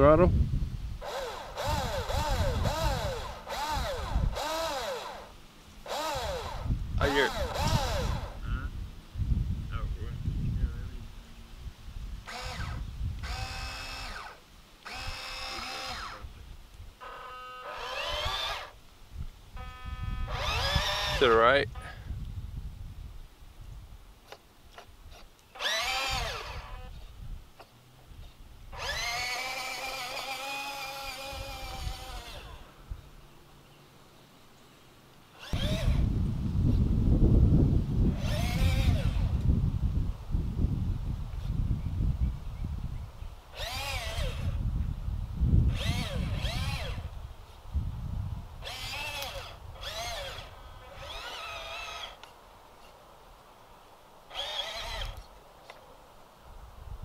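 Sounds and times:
toy truck electric motors whining: 0:01.0 - 0:08.4, 0:12.2 - 0:16.3, 0:17.0 - 0:18.8, 0:19.6 - 0:21.9, 0:25.1 - 0:27.0, 0:28.7 - 0:32.8, 0:35.3 - 0:36.1, 0:38.1 - 0:39.4, 0:43.5 - 0:44.6, 0:45.7 - 0:47.2, 0:48.6 - 0:52.3, 0:54.3 - 0:55.3.

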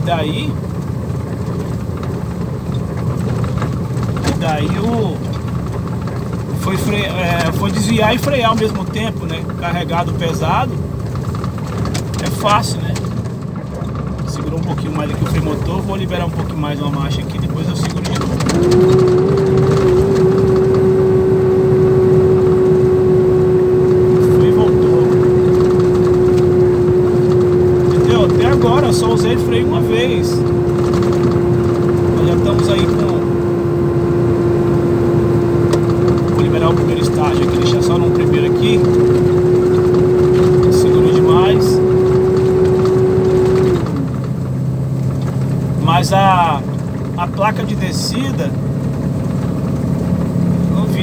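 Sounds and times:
truck engine drone: 0:00.0 - 0:51.0
engine brake whine: 0:11.2 - 0:51.0.

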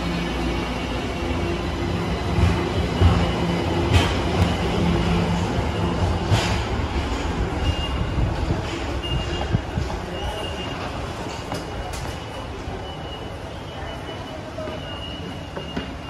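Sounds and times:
subway train hum and rumble: 0:00.0 - 0:16.0.

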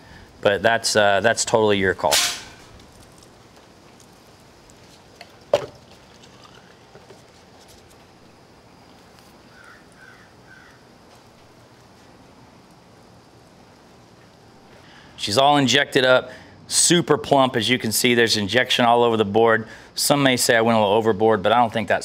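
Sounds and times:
steady background hiss: 0:00.0 - 0:22.0.

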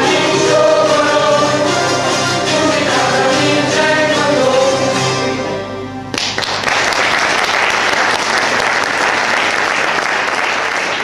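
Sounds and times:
choir singing folk song: 0:00.0 - 0:05.7.

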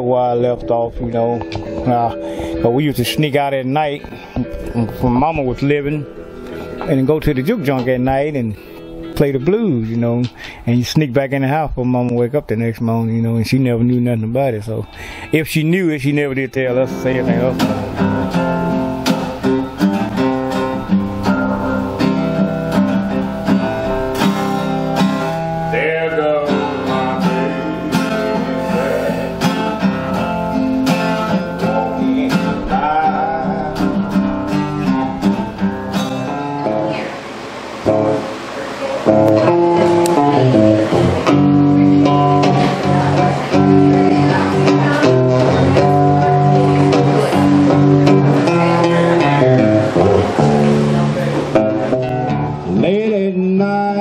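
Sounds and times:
blues guitar playing: 0:00.0 - 0:54.0
man singing: 0:06.8 - 0:18.2, 0:25.6 - 0:34.7, 0:52.6 - 0:54.0.

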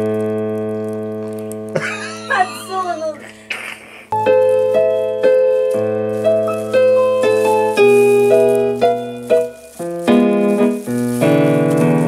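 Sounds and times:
digital keyboard piano playing: 0:04.1 - 0:12.0.

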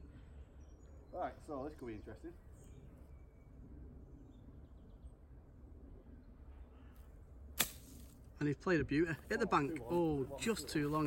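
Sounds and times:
faint outdoor background: 0:00.0 - 0:11.0.

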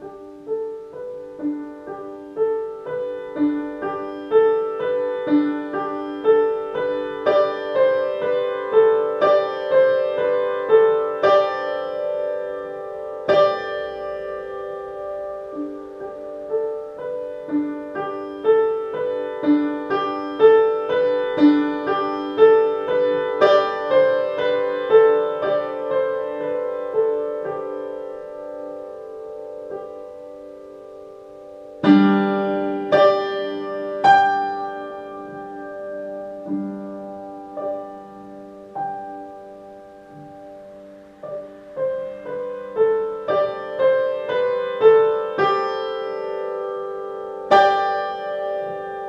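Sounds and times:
slow gentle piano piece: 0:00.0 - 0:49.0.

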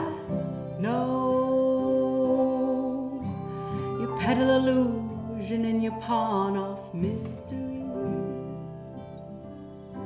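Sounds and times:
strummed acoustic guitar: 0:00.0 - 0:10.0.

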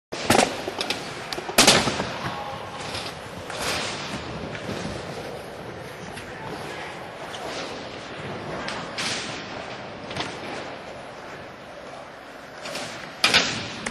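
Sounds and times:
skateboard wheels rolling: 0:00.2 - 0:13.9.

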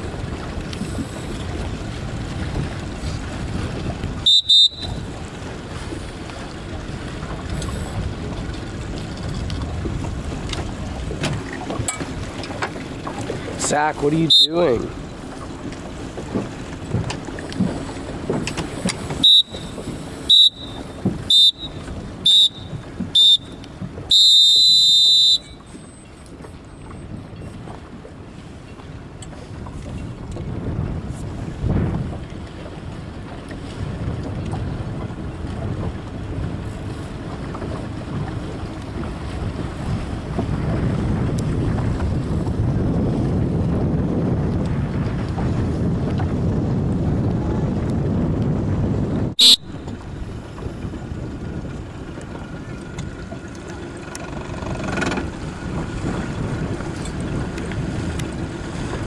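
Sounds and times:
water rushing: 0:00.0 - 0:43.7, 0:49.3 - 0:59.0
wind on microphone: 0:00.0 - 0:59.0.

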